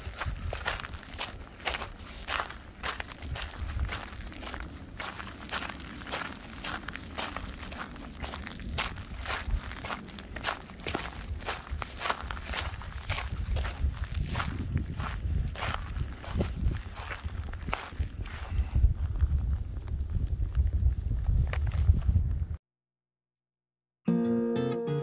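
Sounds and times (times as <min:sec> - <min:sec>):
footsteps on gravelly ground: 0:00.0 - 0:22.5
wind rumble on microphone: 0:00.0 - 0:22.6.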